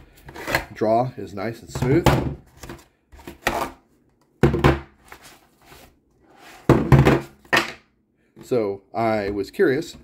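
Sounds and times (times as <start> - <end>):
magazines knocking on tabletop: 4.4 - 4.9, 6.7 - 7.8.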